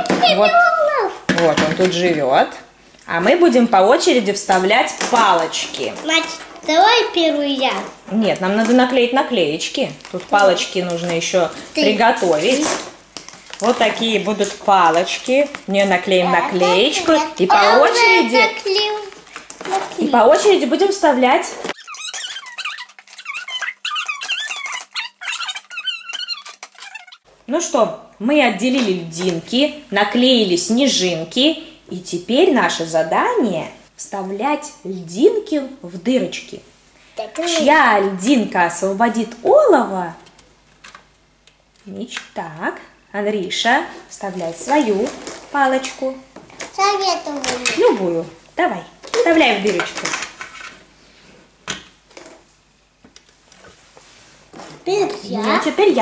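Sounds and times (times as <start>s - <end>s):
squeaky high-pitched chattering: 21.8s - 27.2s.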